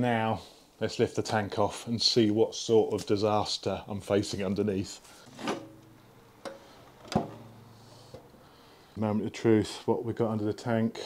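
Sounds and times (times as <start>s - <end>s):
metal clunks and knocks: 5.3s - 8.3s.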